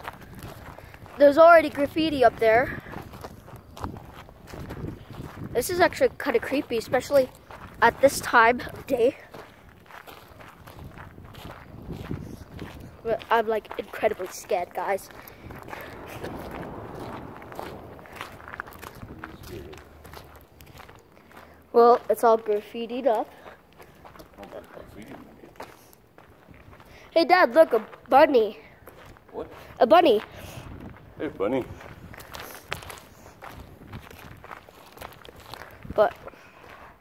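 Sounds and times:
footsteps on gravel: 0.0 - 37.0.

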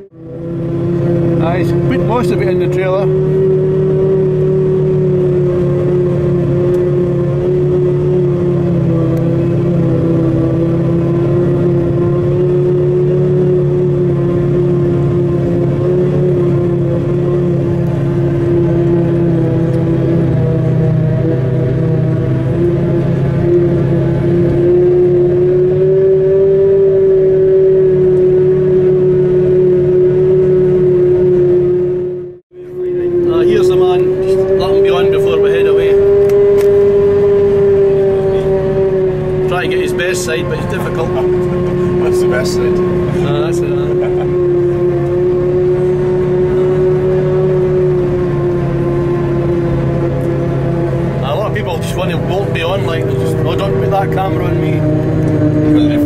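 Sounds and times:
forage harvester running: 39.2 - 56.0.

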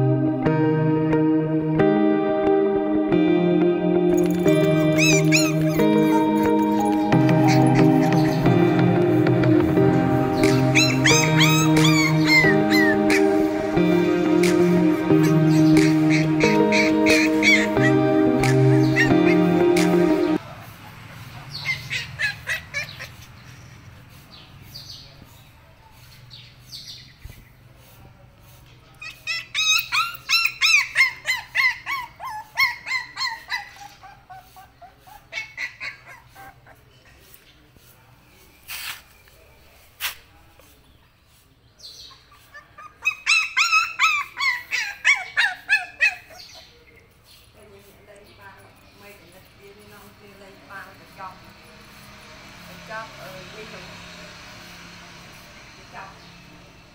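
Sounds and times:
background music: 0.0 - 20.4
puppy whimpering: 4.1 - 8.8, 10.4 - 13.5, 15.1 - 20.4, 21.6 - 23.3, 29.0 - 37.2, 42.1 - 47.1
high-pitched animal calls: 4.2 - 8.8, 10.3 - 20.4, 21.5 - 23.6, 29.0 - 37.2, 42.1 - 47.1.

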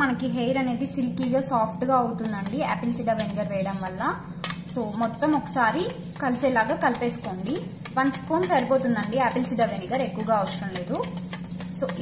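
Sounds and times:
spoon stirring watery mixture: 2.3 - 12.0.

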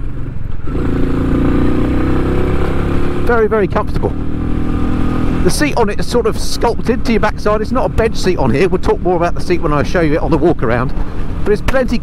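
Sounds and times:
motorcycle engine running: 0.0 - 12.0
wind and road noise: 0.0 - 12.0.

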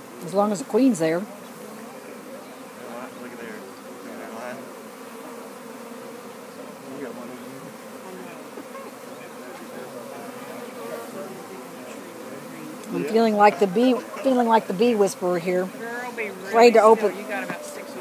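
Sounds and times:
bees buzzing: 0.0 - 18.0.

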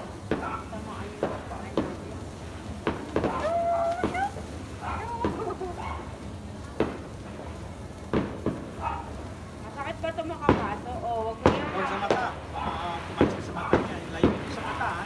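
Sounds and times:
firecrackers cracking: 0.0 - 15.0.

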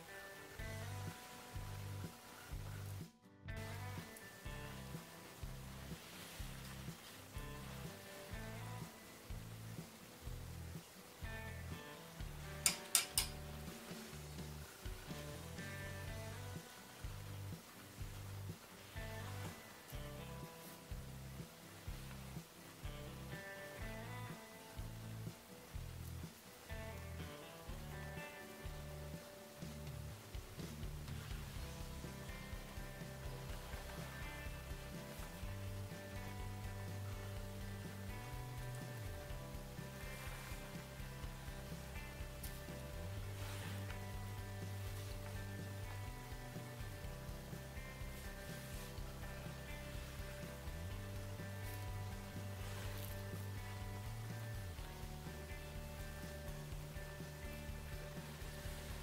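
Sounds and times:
instrumental music with bass beat: 0.0 - 59.0.

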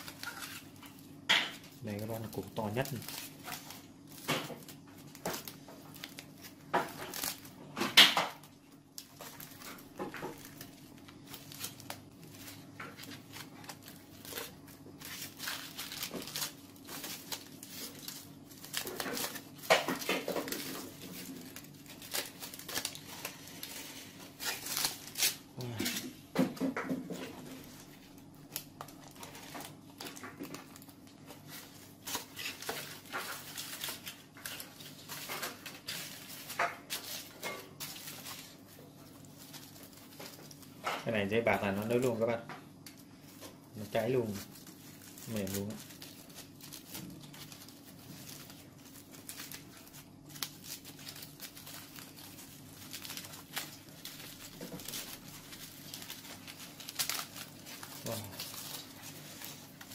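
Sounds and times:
aluminium foil crinkling and tearing: 0.0 - 26.3, 27.1 - 59.9.

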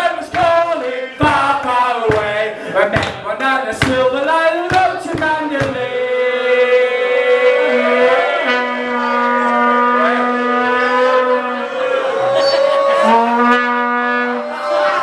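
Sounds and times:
long held horn-like notes: 6.2 - 15.0
live band music: 7.2 - 15.0
sustained low note: 7.4 - 15.0.

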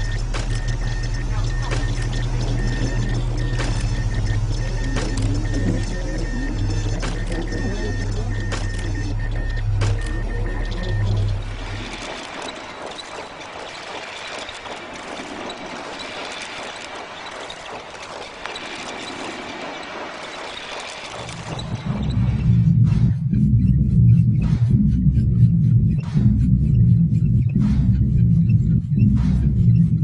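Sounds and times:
loud low hum: 0.0 - 12.4, 21.2 - 30.0
regular clicks: 0.0 - 22.2
soundtrack music: 0.0 - 30.0
hissing clatter: 9.7 - 22.0
low rumble: 21.3 - 30.0.

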